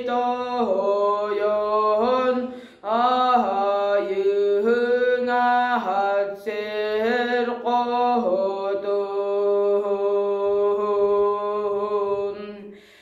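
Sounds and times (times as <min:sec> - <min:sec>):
boy singing solo chant: 0:00.0 - 0:12.8.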